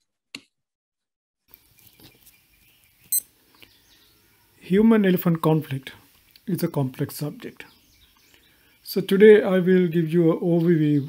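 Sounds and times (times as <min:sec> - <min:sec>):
faint background noise: 0:01.5 - 0:11.0.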